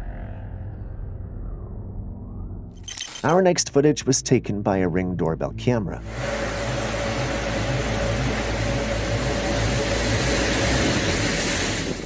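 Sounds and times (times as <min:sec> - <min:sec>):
heavy rain pouring: 0:06.2 - 0:12.0.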